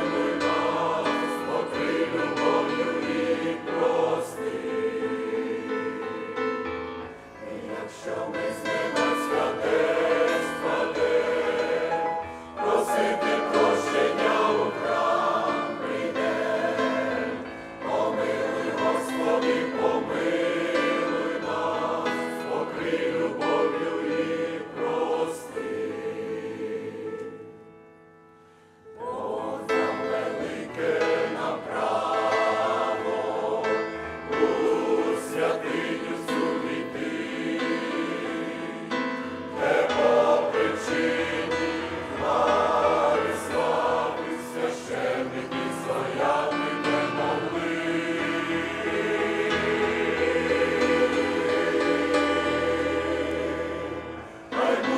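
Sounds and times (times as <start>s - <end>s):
choir singing a hymn: 0.0s - 54.9s.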